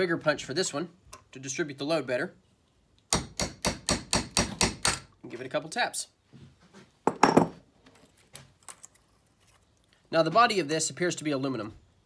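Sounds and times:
metal parts clattering on vise: 0:07.1 - 0:07.6.

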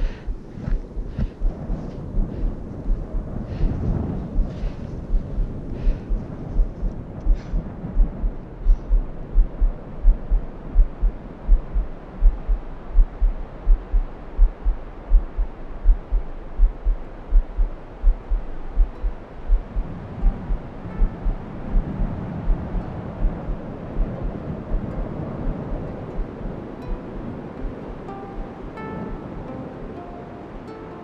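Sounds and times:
heartbeat thumps: 0:00.0 - 0:29.2
low rushing background: 0:00.0 - 0:31.0.

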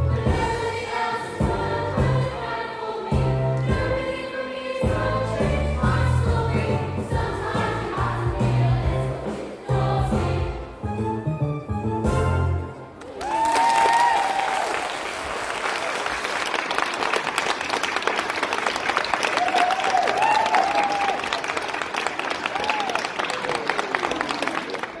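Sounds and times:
high whoops: 0:13.0 - 0:15.0, 0:19.3 - 0:21.4, 0:22.5 - 0:23.9
audience applauding and cheering: 0:13.0 - 0:25.0.

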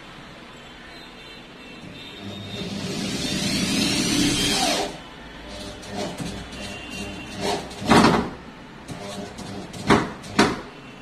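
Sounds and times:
electric drill drilling into wood: 0:02.2 - 0:07.6.

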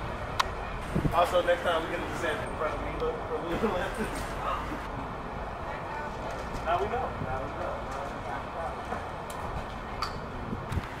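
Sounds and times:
wind rumbling on microphone: 0:00.0 - 0:01.3, 0:09.1 - 0:11.0.

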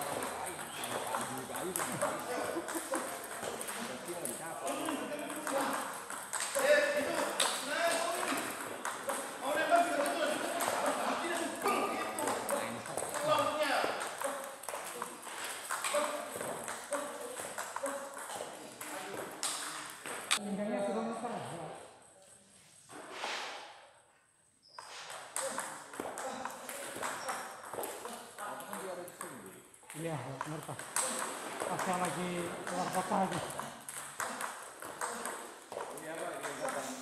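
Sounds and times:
table tennis balls pocking: 0:00.0 - 0:20.3
voices talking: 0:00.0 - 0:21.1, 0:25.4 - 0:37.0.

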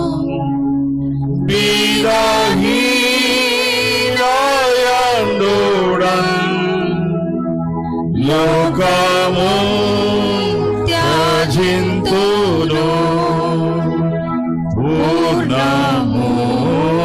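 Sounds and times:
person singing a hymn: 0:00.0 - 0:00.6, 0:01.4 - 0:07.4, 0:08.1 - 0:17.0.

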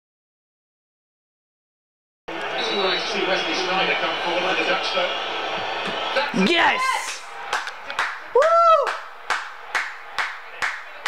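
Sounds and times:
person clapping hands: 0:07.0 - 0:11.0.

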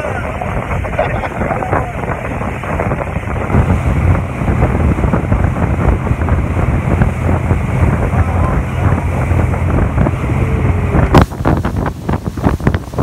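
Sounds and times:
boat engine drone: 0:00.0 - 0:13.0
rush of boat wake: 0:00.0 - 0:13.0
wind buffeting microphone: 0:00.0 - 0:13.0.

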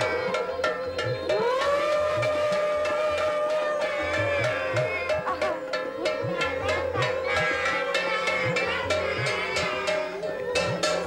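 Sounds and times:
background music with tabla beats: 0:00.0 - 0:11.0
conch shell blown: 0:01.3 - 0:05.6.

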